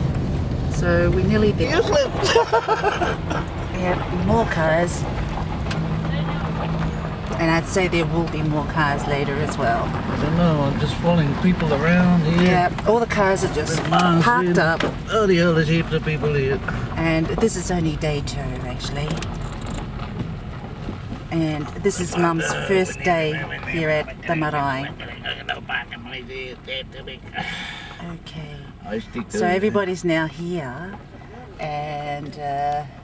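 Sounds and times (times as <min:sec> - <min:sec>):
car engine running: 0:00.0 - 0:33.0
road noise: 0:00.0 - 0:33.0.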